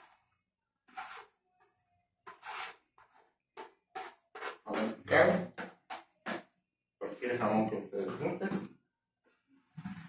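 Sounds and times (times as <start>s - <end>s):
spatula scraping a plate: 0.9s - 1.4s, 2.2s - 5.0s.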